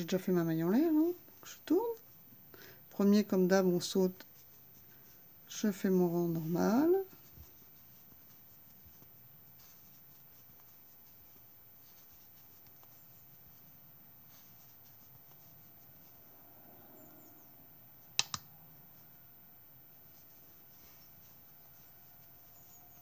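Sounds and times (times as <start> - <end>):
yarn rustling with crochet hook: 0.0 - 23.0
sharp clicks: 18.2 - 18.5.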